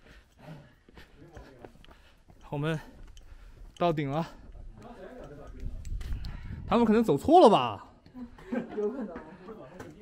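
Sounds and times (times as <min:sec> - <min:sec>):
soft footsteps on a path: 0:00.0 - 0:10.0.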